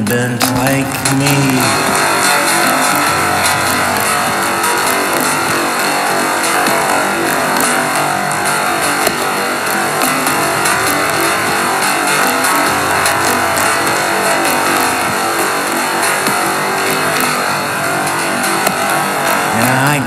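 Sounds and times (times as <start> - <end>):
instrumental electronic synthpop: 0.0 - 20.0.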